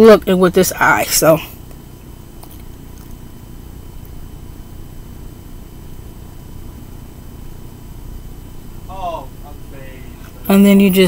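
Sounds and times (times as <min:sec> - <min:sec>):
faint high whine tones: 0:00.0 - 0:11.0
low background rumble: 0:00.0 - 0:11.0.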